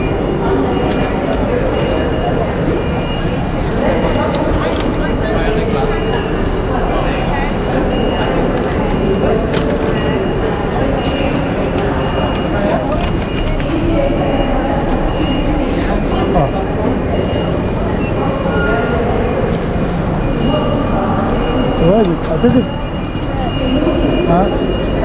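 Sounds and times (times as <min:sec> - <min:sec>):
indistinct crowd chatter: 0:00.0 - 0:25.0.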